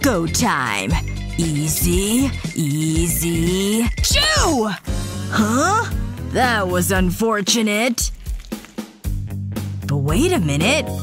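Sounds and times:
background music: 0.0s - 11.0s
paintbrush squishing wet paint: 8.0s - 8.9s.

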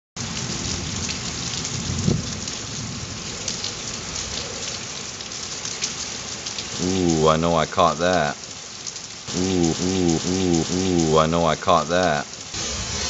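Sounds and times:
heavy rain on roof and ground: 0.2s - 13.0s.

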